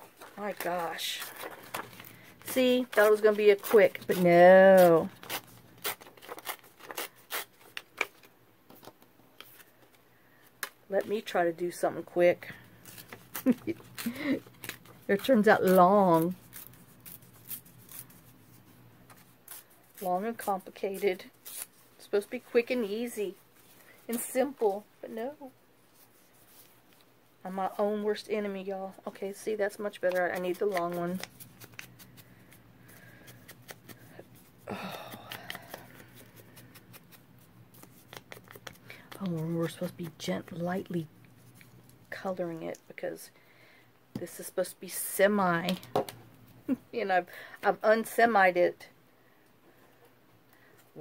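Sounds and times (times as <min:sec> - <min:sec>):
paper tearing and crinkling: 0:00.0 - 0:08.3, 0:12.8 - 0:18.6, 0:30.0 - 0:32.3
paper rustling: 0:00.0 - 0:10.0, 0:29.9 - 0:40.6.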